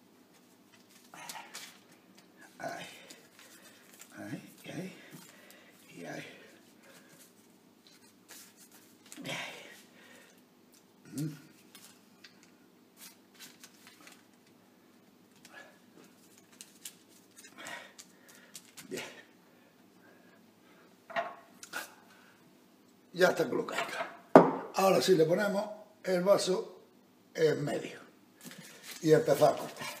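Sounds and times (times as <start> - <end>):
hands smoothing pastry on paper: 2.7 - 9.9, 28.4 - 30.0.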